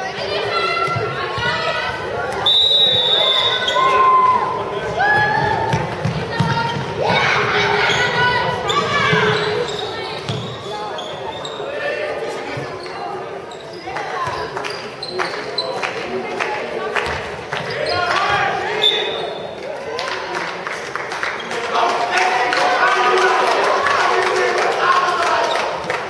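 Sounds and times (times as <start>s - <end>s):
handball bouncing on hall floor: 5.1s - 7.3s, 8.7s - 10.6s
players shouting: 21.7s - 25.8s.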